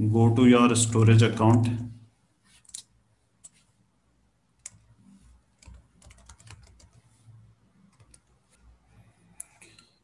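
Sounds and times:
faint keyboard typing: 2.5 - 3.7, 4.5 - 10.0.

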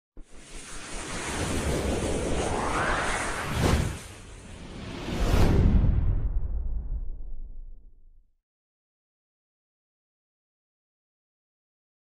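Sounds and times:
rushing wind-like whoosh: 0.2 - 7.8.

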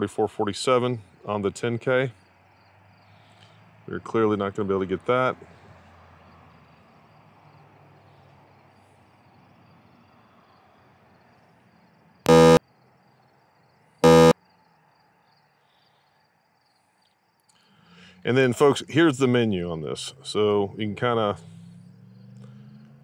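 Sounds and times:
electronic buzzer beeps: 12.3 - 12.6, 14.0 - 14.4.

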